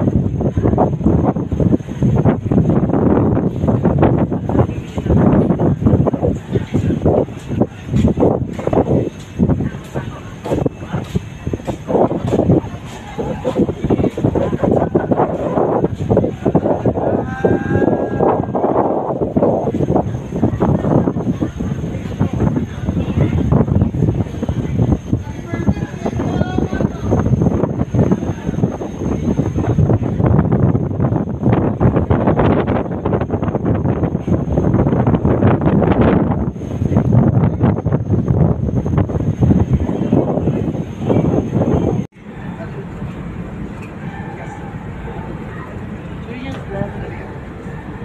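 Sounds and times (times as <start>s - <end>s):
people talking over one another: 0.0s - 48.0s
wind buffeting microphone: 0.0s - 48.0s.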